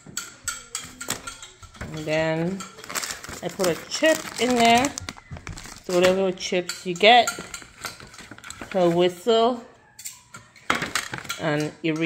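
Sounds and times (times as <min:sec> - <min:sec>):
items knocking in paper bag: 0:01.8 - 0:06.3.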